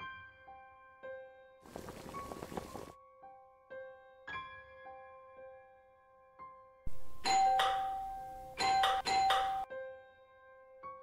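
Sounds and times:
soft piano music: 0.0 - 11.0
electric doorbell ringing: 7.1 - 9.7.

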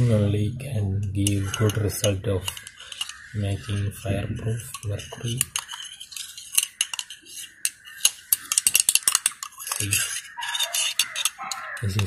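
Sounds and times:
spatula clinking against glass: 4.7 - 12.0.

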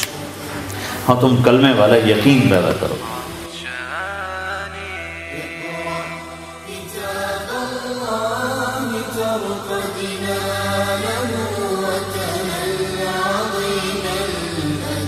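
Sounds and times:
chanted melodic vocals: 0.0 - 15.0
steady low drone: 0.0 - 15.0.

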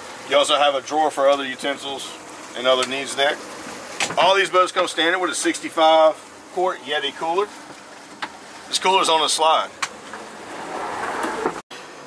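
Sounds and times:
cooler sliding and rolling: 0.0 - 11.6.

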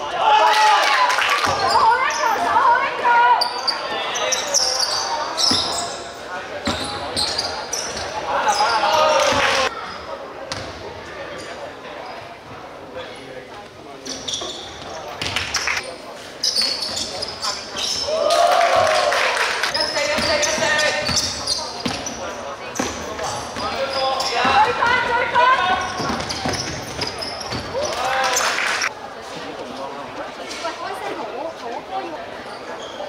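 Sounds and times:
sneaker squeaks: 1.4 - 2.7, 3.3 - 10.8, 14.0 - 18.2, 19.7 - 29.0, 32.4 - 33.0.

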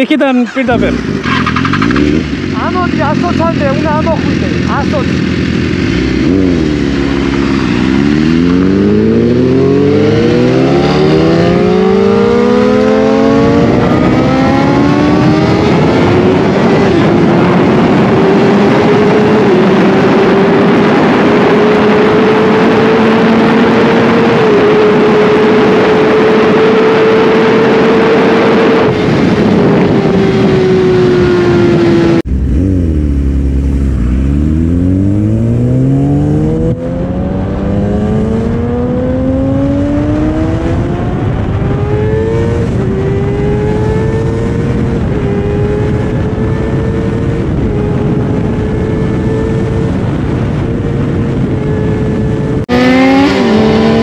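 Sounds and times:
wind rush: 0.0 - 54.0
motorcycle engine revving through gears: 0.5 - 54.0.

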